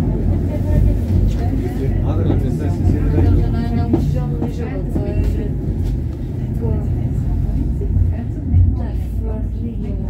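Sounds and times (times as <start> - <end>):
funicular car rumbling on track: 0.0 - 10.0
people talking: 0.0 - 10.0.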